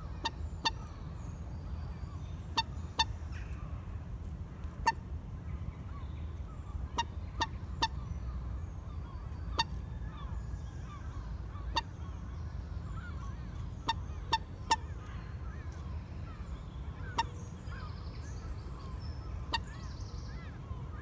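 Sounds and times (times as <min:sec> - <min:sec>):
moorhen calling: 0:00.0 - 0:03.8, 0:05.8 - 0:21.0.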